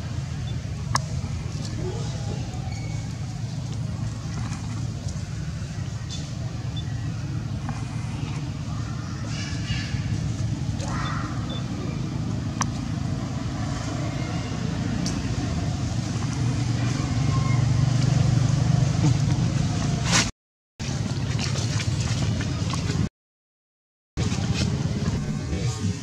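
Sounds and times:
steady low rumble: 0:00.0 - 0:20.1.

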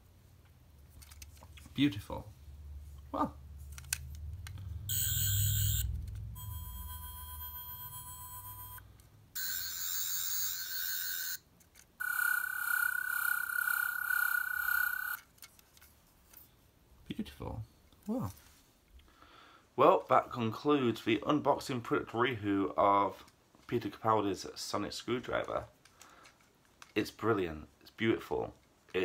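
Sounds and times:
warbling electronic toy tones: 0:04.9 - 0:08.8, 0:09.4 - 0:11.4, 0:12.0 - 0:15.2.

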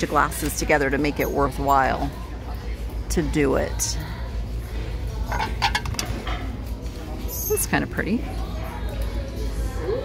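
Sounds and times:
ceramic dishes clinking: 0:05.3 - 0:06.5.

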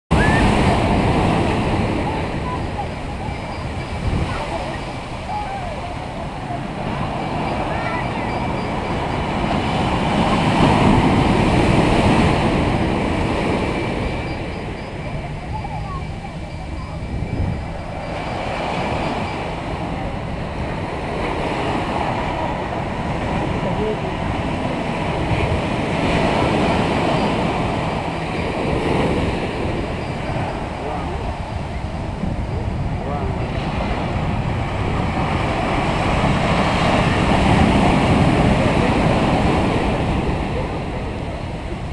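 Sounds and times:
crowd voices and calls: 0:00.1 - 0:41.9
ocean surf breaking on beach: 0:00.1 - 0:41.9.

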